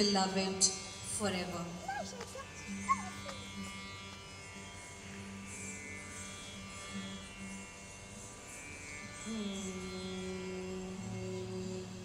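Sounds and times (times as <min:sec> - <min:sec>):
low instrumental drone: 0:00.0 - 0:12.0.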